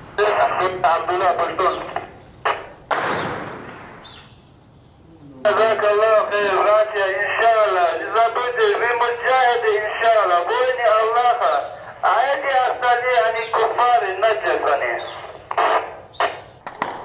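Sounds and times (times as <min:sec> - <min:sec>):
man speaking: 0:00.2 - 0:02.0, 0:05.0 - 0:15.8
heavy gunshot echoing: 0:02.9 - 0:04.2.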